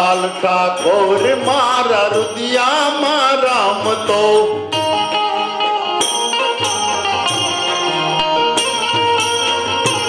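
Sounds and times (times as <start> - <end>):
man singing: 0.0 - 5.6
hand cymbals: 0.0 - 10.0
harmonium drone: 0.0 - 10.0
tabla: 0.0 - 10.0.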